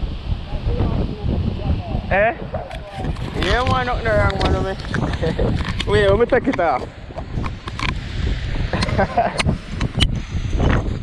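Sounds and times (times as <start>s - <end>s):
wind buffeting microphone: 0.0s - 11.0s
person speaking: 2.4s - 6.9s.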